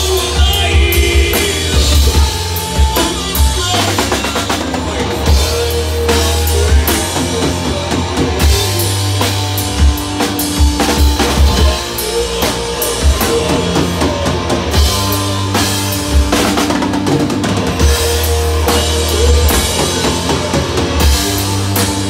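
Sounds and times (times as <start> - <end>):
drum kit with cymbal crashes: 0.0 - 22.0
electric guitars holding low chords: 0.0 - 22.0.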